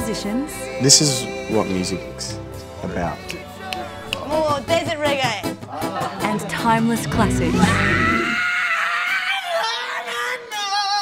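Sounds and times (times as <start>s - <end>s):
band music: 0.0s - 8.4s.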